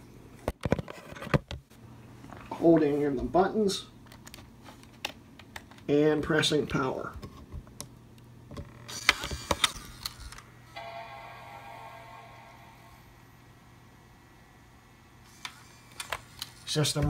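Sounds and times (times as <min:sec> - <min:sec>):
computer startup chime: 0:10.8 - 0:13.4.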